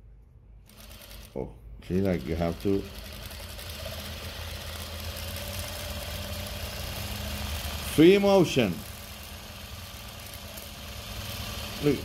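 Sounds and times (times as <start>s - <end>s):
sewing machine running: 0.6s - 12.0s.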